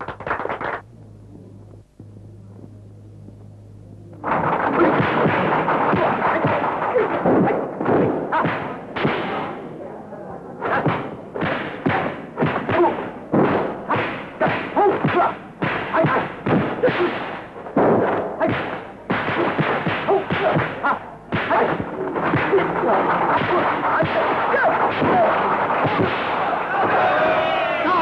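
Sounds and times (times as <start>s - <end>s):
punch and kick impacts: 4.3s - 9.6s, 10.7s - 27.1s
fighters yelling: 13.9s - 17.3s, 19.4s - 28.0s
crowd yelling and cheering: 25.3s - 28.0s.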